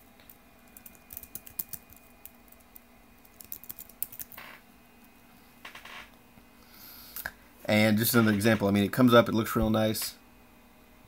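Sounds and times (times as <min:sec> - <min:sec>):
keyboard typing clicks: 0:00.7 - 0:02.6, 0:03.2 - 0:04.4.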